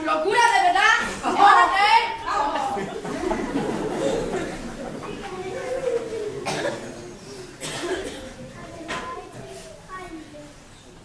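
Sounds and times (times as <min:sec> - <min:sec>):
low voices murmuring: 0:00.3 - 0:11.0
audience coughing: 0:02.6 - 0:08.6.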